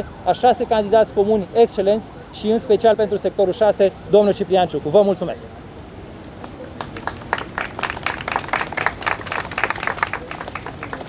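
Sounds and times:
small group applauding: 6.4s - 11.0s.

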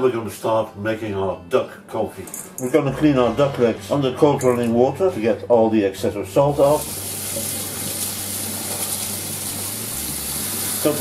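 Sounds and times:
tap water running into metal sink: 6.6s - 11.0s.

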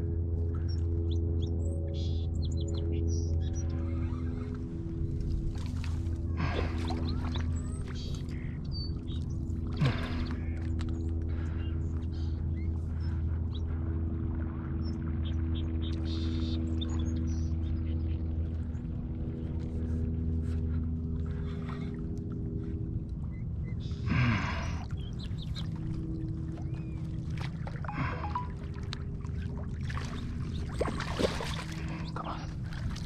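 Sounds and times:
fish splashing: 29.7s - 33.0s.

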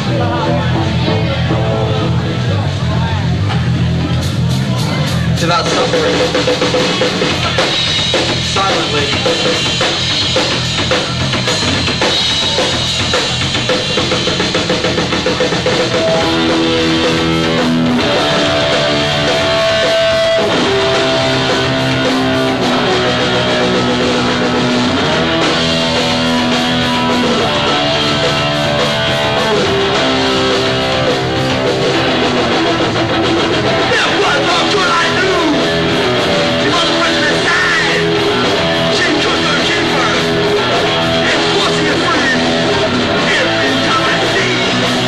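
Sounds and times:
bass guitar: 0.0s - 45.0s
distorted electric guitar: 0.0s - 45.0s
drums: 0.0s - 45.0s.

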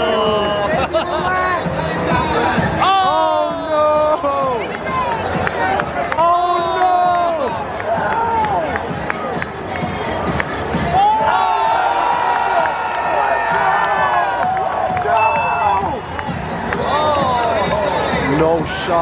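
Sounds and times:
fans shouting and cheering: 0.0s - 19.0s
stadium crowd noise: 0.0s - 19.0s.

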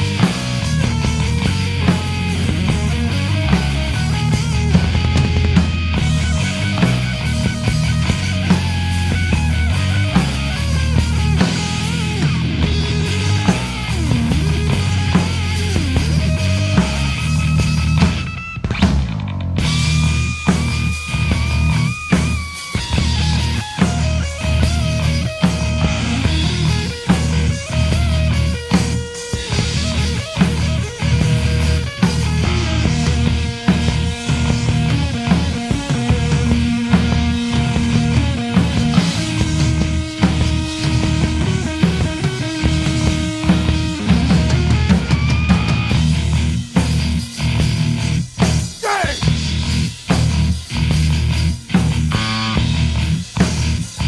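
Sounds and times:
melodic lead guitar bending pitch: 0.0s - 49.7s
distorted rhythm guitar and bass: 0.0s - 54.0s
drums hitting: 0.0s - 54.0s.

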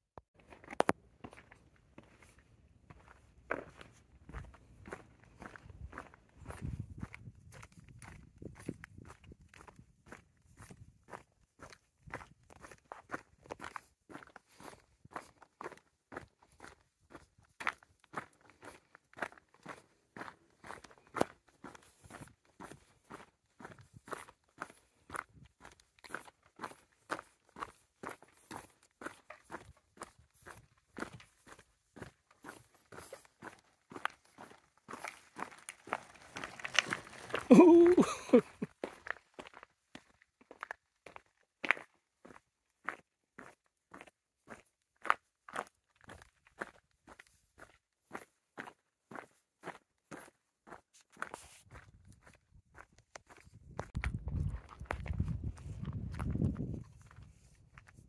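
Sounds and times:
footsteps on concrete: 0.4s - 58.0s.

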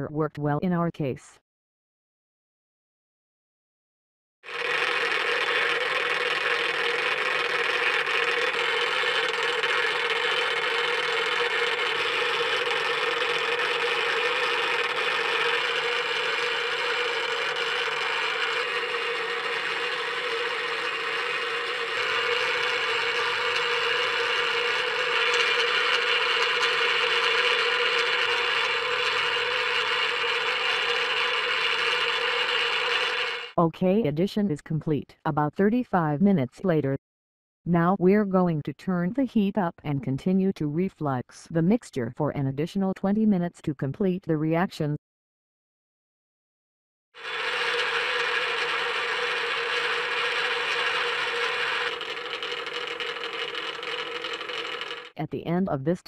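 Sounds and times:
magnetic stir bar rattling and grinding: 4.5s - 33.6s, 47.2s - 55.2s.

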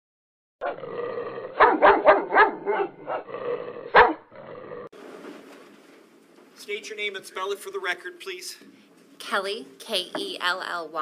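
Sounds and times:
dog growling: 0.6s - 4.9s
dog barking: 1.6s - 3.3s, 3.9s - 4.3s.

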